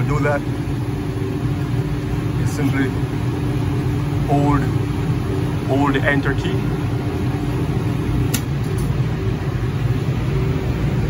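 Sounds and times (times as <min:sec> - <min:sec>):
air conditioning unit humming: 0:00.0 - 0:11.0.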